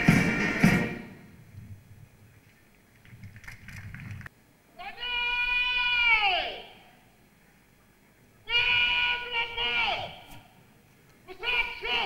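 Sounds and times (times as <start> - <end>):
person shouting drill commands: 4.8 - 6.8, 8.5 - 10.3, 11.3 - 12.0.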